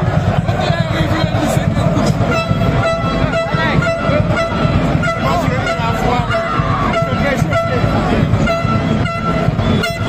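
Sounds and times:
crowd voices: 0.0 - 10.0
fast drumming: 0.0 - 10.0
horns tooting: 0.0 - 10.0.

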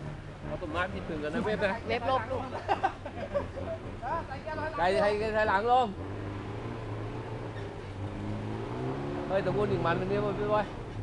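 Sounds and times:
truck engine idling: 0.0 - 8.1.

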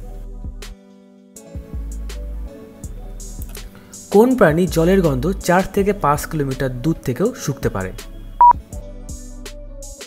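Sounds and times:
background music: 0.0 - 10.0
person speaking: 4.1 - 7.9.

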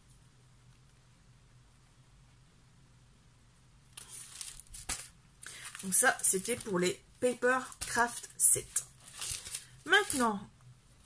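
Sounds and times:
packaging rustling and crinkling: 4.0 - 7.0, 7.6 - 10.4.

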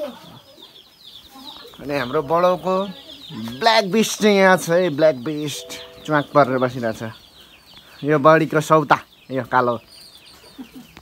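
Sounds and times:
chickens clucking: 0.0 - 11.0
high quick falling chirps: 1.8 - 7.0.

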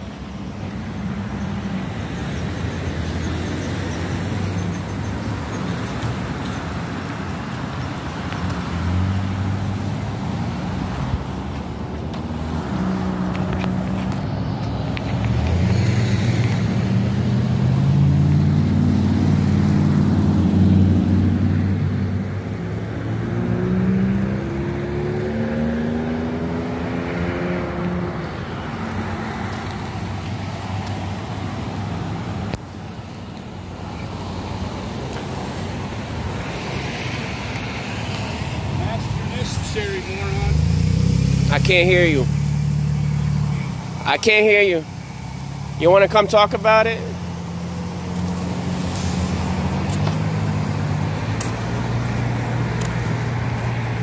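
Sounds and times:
car engines passing close by: 0.0 - 54.0.

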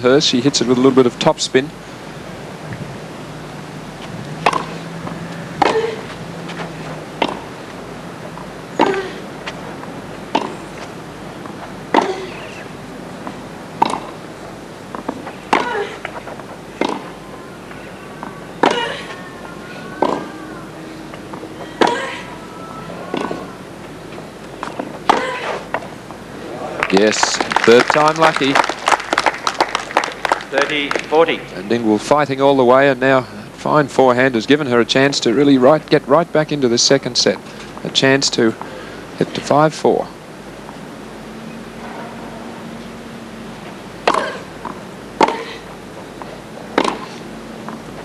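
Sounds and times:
tennis ball hit by racquets: 4.4 - 7.6, 8.4 - 9.6, 10.2 - 14.2, 14.9 - 17.2, 18.6 - 19.2, 20.0 - 20.3, 21.3 - 22.1, 23.1 - 23.6, 24.6 - 25.9, 43.6 - 47.9.

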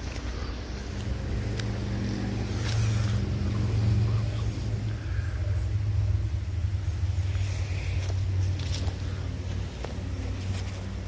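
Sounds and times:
engine humming steadily: 0.0 - 11.0.

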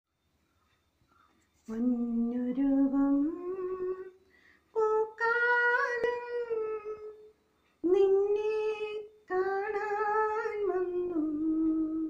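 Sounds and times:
woman singing unaccompanied: 1.6 - 12.0.

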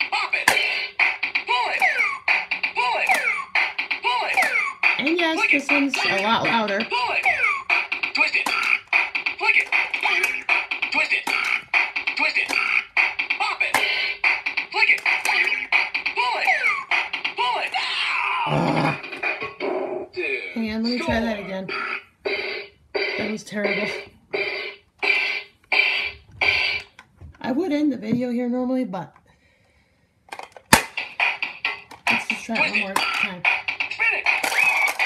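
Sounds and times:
electronic toy beat track: 0.0 - 27.1, 30.3 - 35.0
electronic spoken commands: 1.5 - 17.8, 18.5 - 21.9, 23.0 - 24.1, 32.1 - 34.7.

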